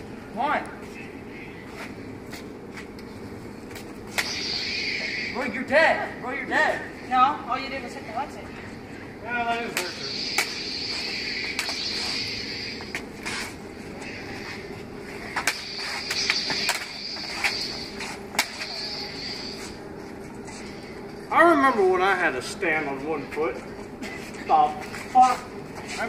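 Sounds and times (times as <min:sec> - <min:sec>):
steady high hum: 0:00.0 - 0:26.0.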